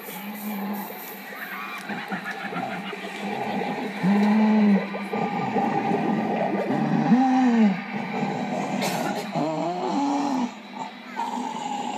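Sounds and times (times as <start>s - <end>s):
steady background hiss: 0.0s - 11.9s
wordless moaning calls: 0.0s - 11.9s.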